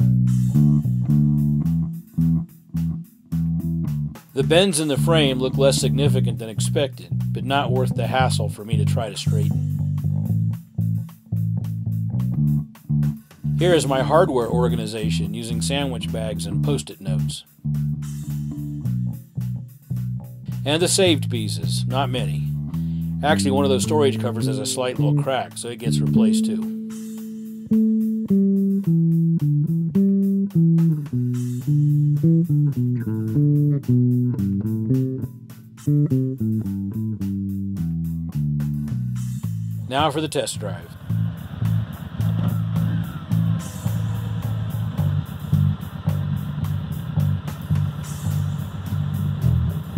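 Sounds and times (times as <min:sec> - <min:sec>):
bass guitar playing: 0:00.0 - 0:49.9.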